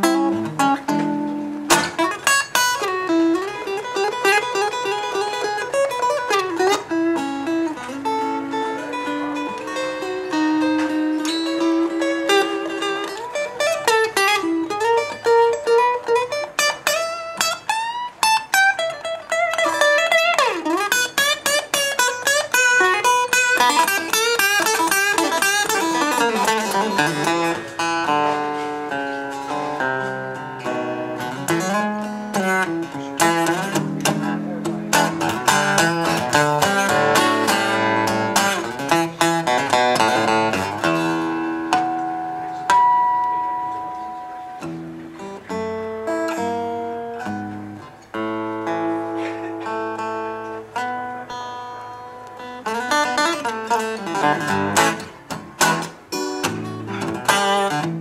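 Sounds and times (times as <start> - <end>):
acoustic guitar playing blues: 0.0 - 58.0.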